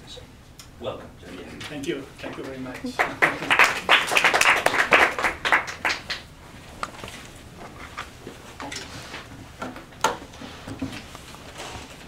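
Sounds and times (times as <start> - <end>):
audience applauding: 2.8 - 6.3.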